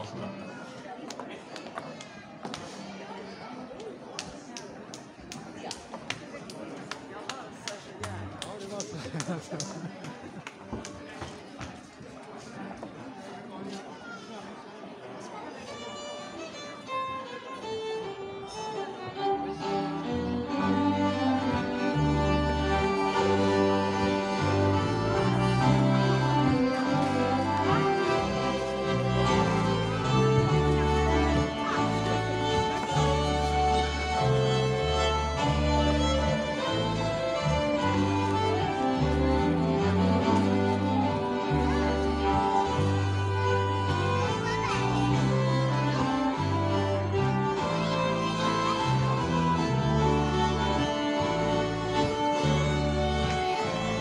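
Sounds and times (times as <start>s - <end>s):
fiddles playing melody: 15.6s - 54.0s
dance band playing a waltz: 15.7s - 54.0s
steady bass line: 20.7s - 54.0s.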